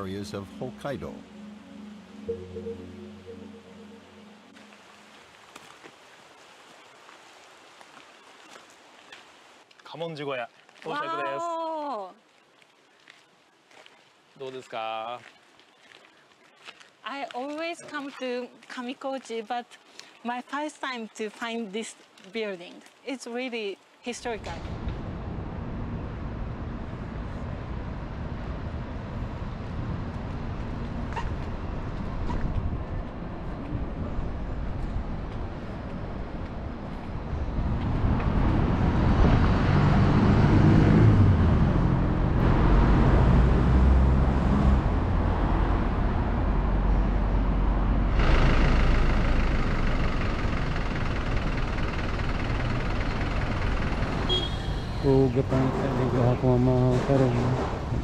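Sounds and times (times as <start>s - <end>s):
steady traffic hum: 0.0s - 5.6s, 23.6s - 58.0s
motor vehicle engine passing: 37.2s - 58.0s.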